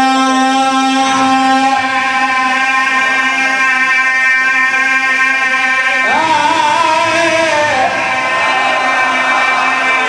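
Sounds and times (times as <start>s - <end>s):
man chanting amplified: 0.0s - 8.2s.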